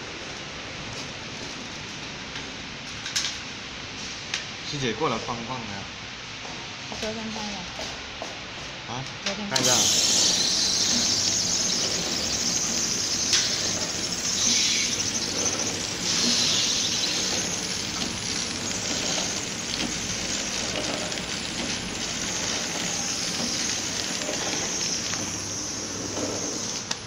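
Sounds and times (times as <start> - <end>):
packing machine running: 9.6 - 27.0
strong high hiss: 9.6 - 27.0.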